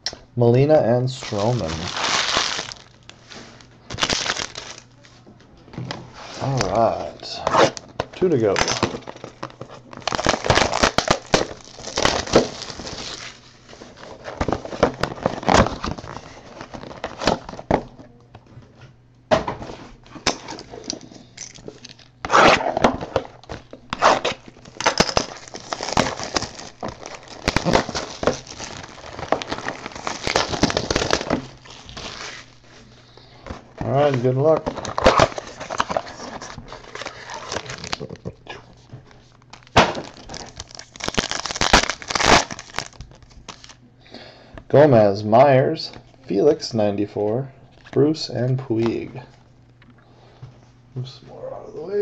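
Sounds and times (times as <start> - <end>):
packaging crinkling and tearing: 1.1 - 5.0, 6.3 - 17.8, 21.8 - 32.8, 33.4 - 43.8.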